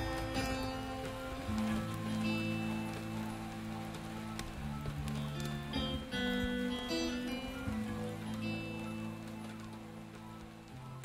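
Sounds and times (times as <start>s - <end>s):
acoustic guitar plucked notes: 0.0s - 11.0s.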